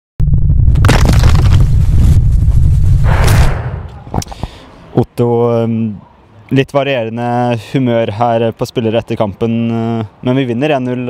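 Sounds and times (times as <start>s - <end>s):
choppy low rumble: 0.2s - 4.2s
microphone crackles: 0.2s - 4.5s.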